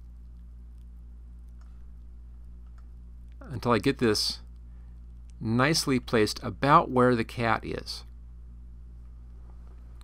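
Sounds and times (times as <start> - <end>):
low electrical hum: 0.0 - 10.0
faint clicks: 0.1 - 3.4.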